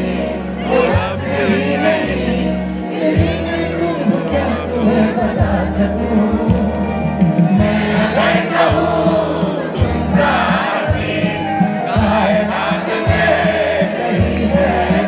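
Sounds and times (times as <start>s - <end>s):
crowd noise: 0.0s - 15.0s
drum kit: 0.0s - 15.0s
guitar: 0.0s - 15.0s
man singing: 0.0s - 15.0s.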